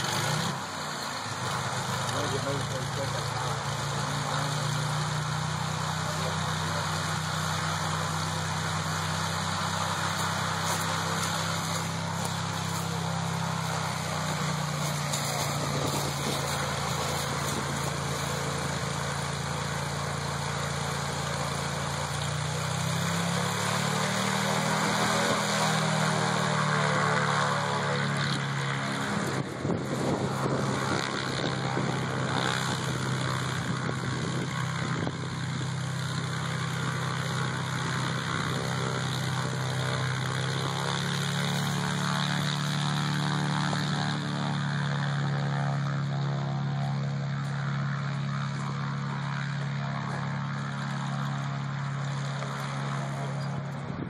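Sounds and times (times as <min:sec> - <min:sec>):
propeller airplane engine: 0:00.0 - 0:54.0.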